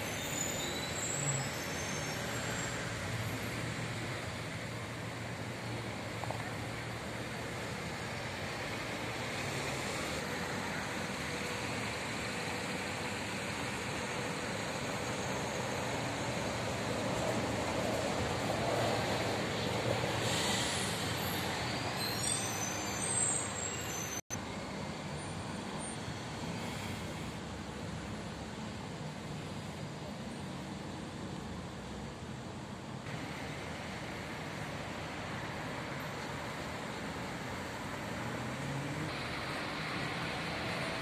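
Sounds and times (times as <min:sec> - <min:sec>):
bus driving past: 0:00.0 - 0:41.0
street traffic: 0:00.0 - 0:41.0.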